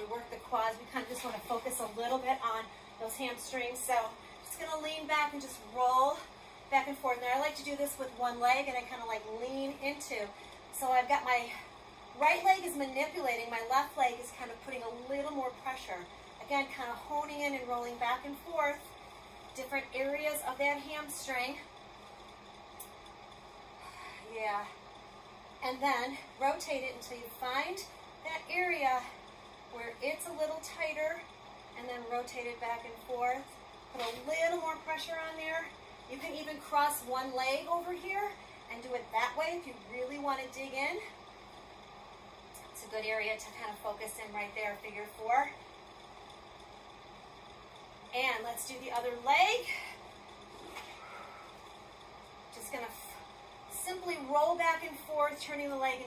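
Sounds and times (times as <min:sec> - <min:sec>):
room noise hiss: 0:00.0 - 0:56.0.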